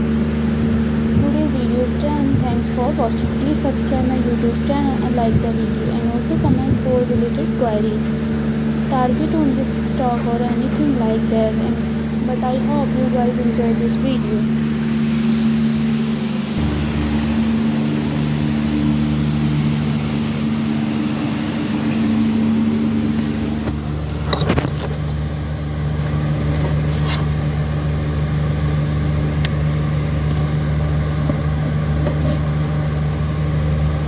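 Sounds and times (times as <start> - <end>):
motor humming: 0.0 - 34.0.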